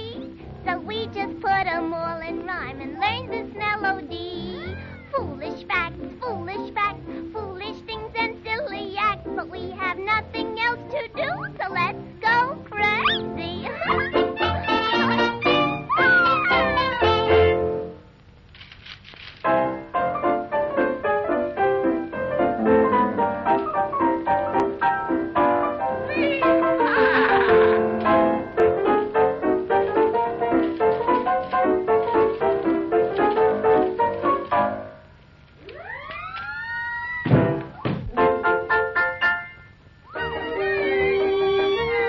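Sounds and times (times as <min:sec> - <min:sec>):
old cartoon soundtrack music: 0:00.0 - 0:18.1, 0:19.5 - 0:42.0
high sliding cry: 0:13.0 - 0:17.6, 0:26.0 - 0:28.0.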